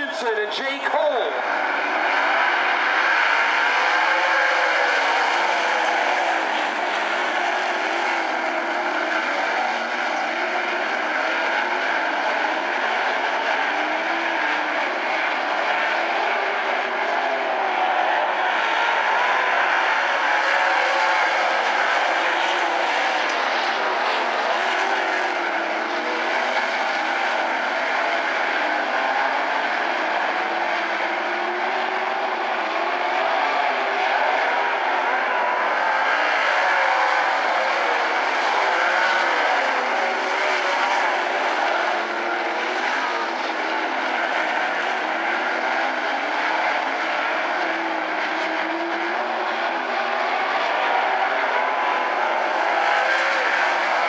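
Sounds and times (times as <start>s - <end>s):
racing car engines: 0.0s - 54.0s.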